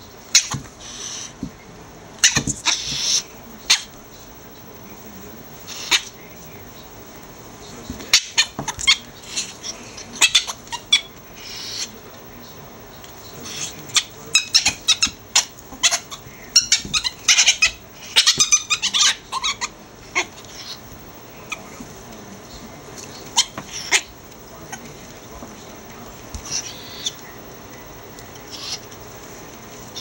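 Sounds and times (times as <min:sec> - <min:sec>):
ferrets squeaking: 0:00.0 - 0:01.6, 0:02.2 - 0:04.6, 0:05.5 - 0:30.0.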